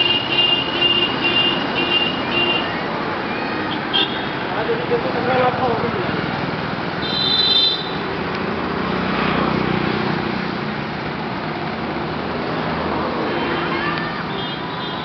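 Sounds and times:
passing cars and motorbikes: 0.0 - 15.0.

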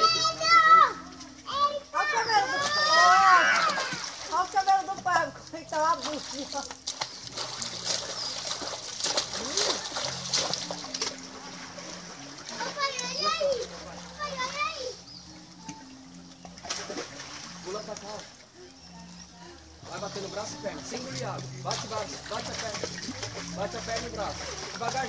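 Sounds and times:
children squealing and calling: 0.0 - 4.4, 12.5 - 15.5
water splashing in a pool: 0.0 - 25.0.

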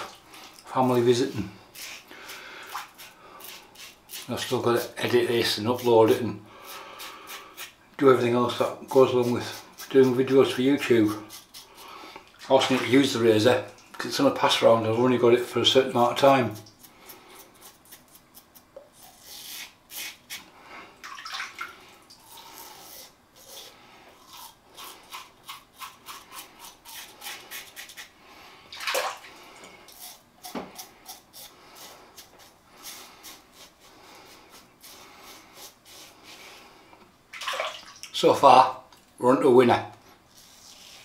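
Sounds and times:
razor scraping stubble: 2.7 - 6.2, 7.0 - 11.9.

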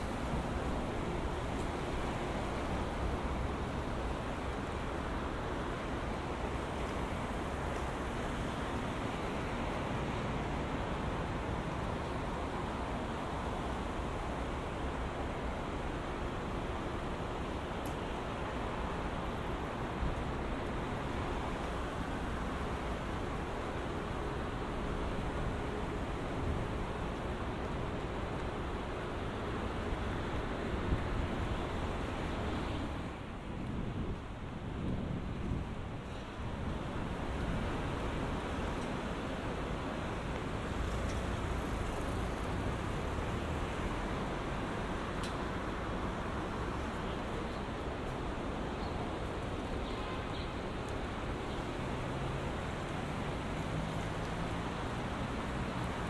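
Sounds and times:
traffic rumble: 0.0 - 56.0.

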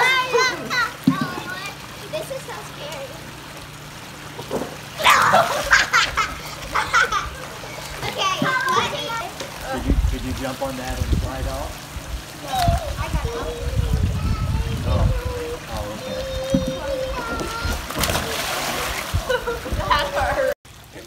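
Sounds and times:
children calling out: 0.0 - 3.1, 4.9 - 9.4, 12.4 - 18.7
water splashing: 0.0 - 21.0.

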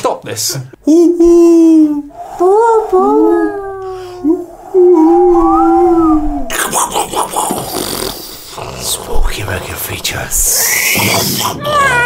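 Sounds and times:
long wavering howls: 1.8 - 8.5
rushing noise burst: 2.0 - 8.6.

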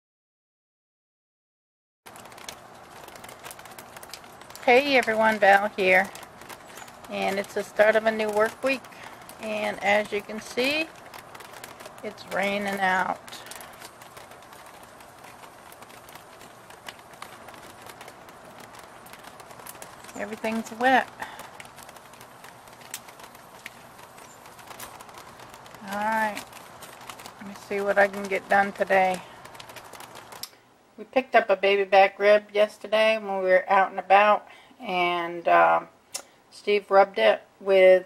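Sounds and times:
drops ticking on wooden deck: 2.1 - 30.6
steady rain hiss: 2.1 - 38.0.

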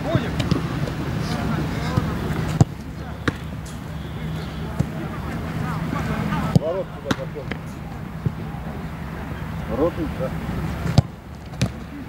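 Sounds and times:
football being kicked: 1.8 - 3.5, 6.5 - 7.6, 10.8 - 11.9.

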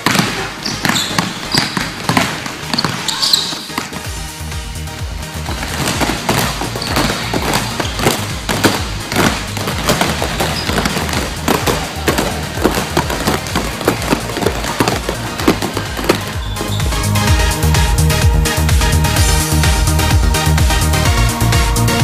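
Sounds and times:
basketballs bouncing on gym floor: 0.0 - 4.2, 5.0 - 18.8
background music: 0.0 - 22.0.

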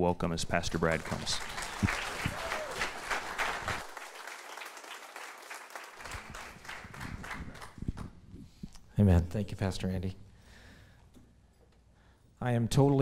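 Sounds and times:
congregation applauding: 0.6 - 8.1.

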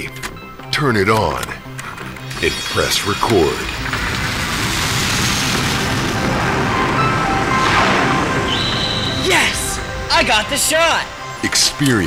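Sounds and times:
background music: 0.0 - 12.0
jet engine roaring: 2.3 - 11.5.

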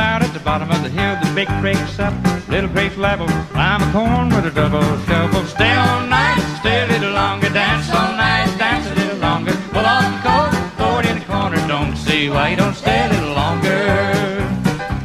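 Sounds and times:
country band playing: 0.0 - 15.0.

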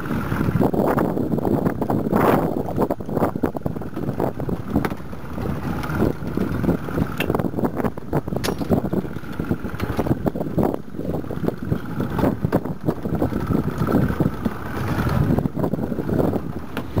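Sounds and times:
wind buffeting microphone: 0.0 - 17.0
knocks and thumps against boat: 3.3 - 10.3.

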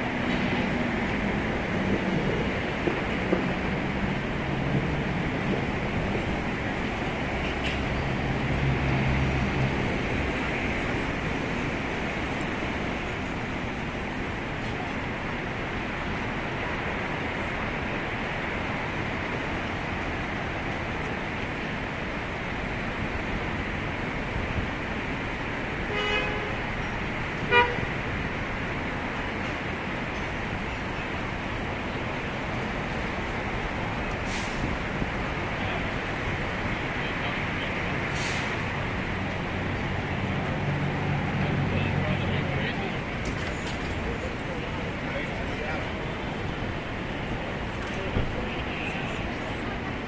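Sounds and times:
city traffic noise: 0.0 - 50.0
road noise: 0.0 - 50.0
car horn toots: 27.5 - 27.8
short hiss: 34.2 - 34.7.

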